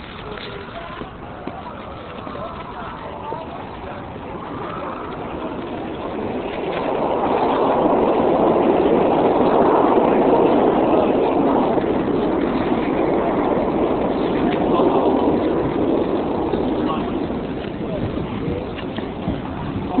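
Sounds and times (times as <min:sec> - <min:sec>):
city street traffic rumble: 0:00.0 - 0:20.0.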